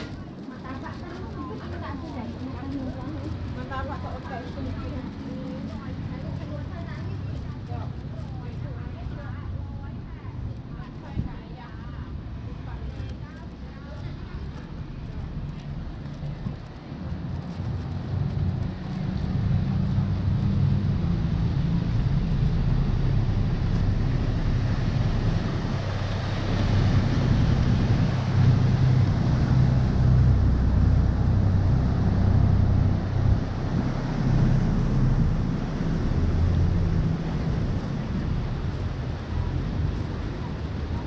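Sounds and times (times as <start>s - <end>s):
boat diesel engine running: 0.0s - 11.5s, 12.4s - 41.0s
boat wake rushing on water: 0.0s - 41.0s.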